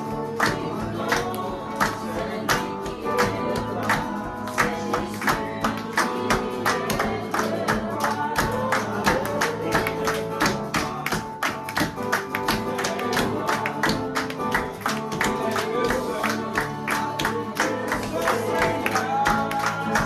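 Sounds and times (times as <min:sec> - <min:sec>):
acoustic guitar strummed: 0:00.0 - 0:20.0
group singing worship song: 0:00.0 - 0:20.0
people clapping in rhythm: 0:00.0 - 0:20.0.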